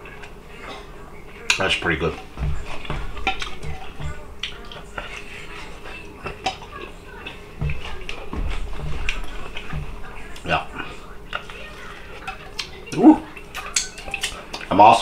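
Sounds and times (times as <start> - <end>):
low thuds: 2.2 - 6.4, 7.4 - 12.4.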